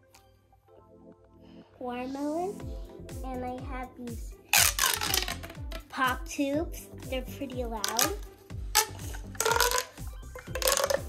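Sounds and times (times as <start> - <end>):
background music with steady beat: 0.0 - 11.0
plastic pop tube crackling pops: 4.5 - 6.0, 7.8 - 11.0.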